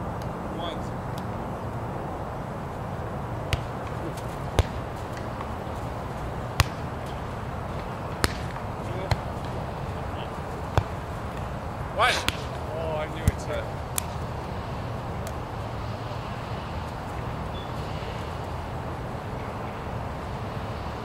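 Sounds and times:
volleyball smacks: 3.5 - 5.5, 6.5 - 6.9, 8.1 - 9.6, 12.2 - 12.6
person shouting: 12.0 - 12.3.

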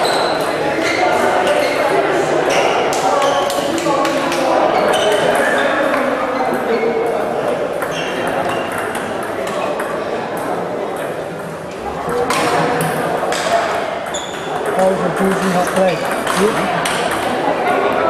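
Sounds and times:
chatter of voices: 0.0 - 18.0
table tennis balls ticking: 7.8 - 11.7, 12.3 - 17.4.

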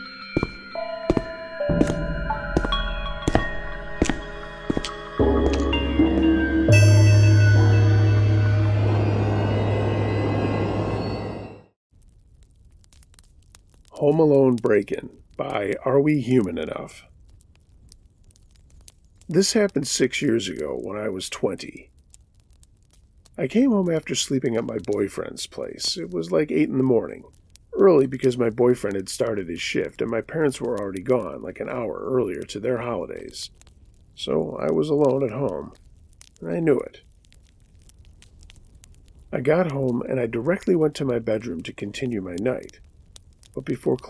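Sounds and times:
wood fire crackling: 0.0 - 44.0.

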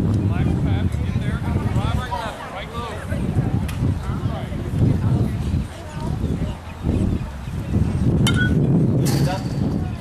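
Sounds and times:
metal bat hitting ball: 8.2 - 9.7.

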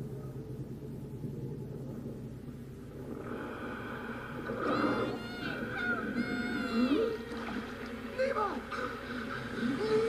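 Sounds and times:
gull crying: 4.5 - 10.0.

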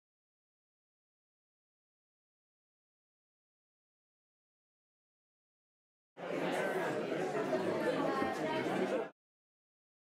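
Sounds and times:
people chatting: 6.2 - 9.2.

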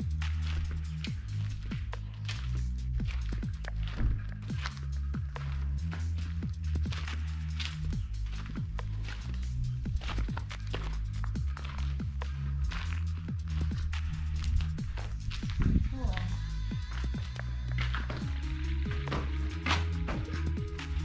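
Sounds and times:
deep bass notes: 0.0 - 21.0.

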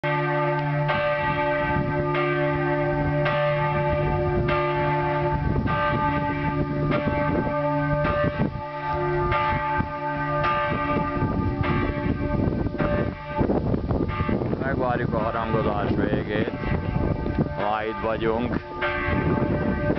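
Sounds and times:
church bells pealing: 0.0 - 19.9.

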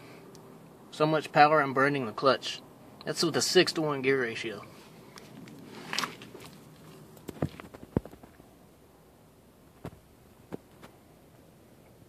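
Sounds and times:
faint background hiss: 0.0 - 12.0
camera bumping knocks and clicks: 7.2 - 8.4.

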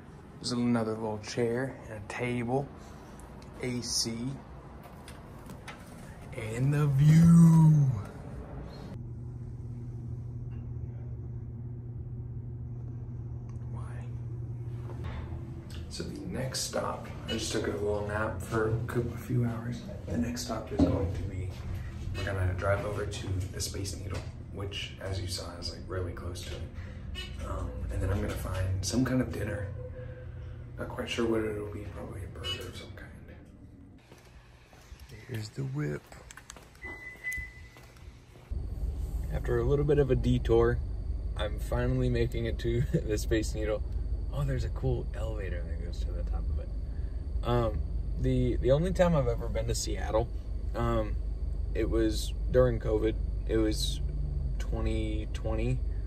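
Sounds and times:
low mechanical hum: 0.0 - 56.0
faint steady high tone: 38.8 - 56.0.

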